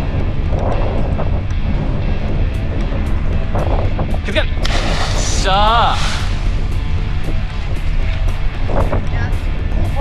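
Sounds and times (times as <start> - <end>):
background music: 0.0 - 10.0
wind buffeting microphone: 0.0 - 10.0.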